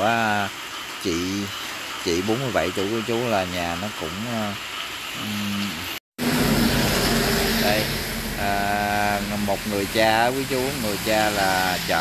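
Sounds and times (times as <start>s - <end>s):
road noise: 0.0s - 12.0s
steady pitched tone: 6.2s - 11.9s
vehicle engine running: 6.2s - 12.0s.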